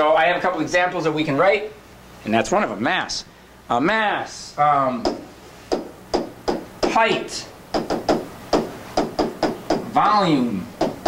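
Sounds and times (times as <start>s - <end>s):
stylus tapping on touchscreen: 5.0s - 7.0s, 7.7s - 9.8s.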